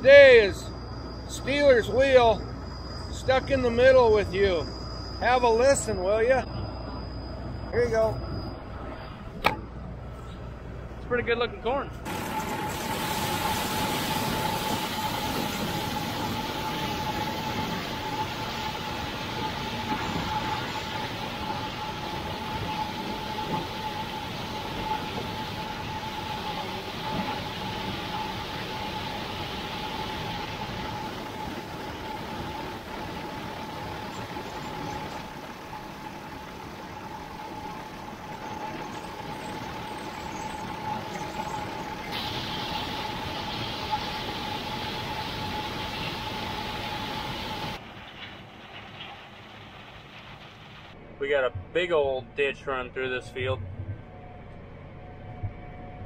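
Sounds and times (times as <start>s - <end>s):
constant mechanical whine: 0.0s - 56.0s.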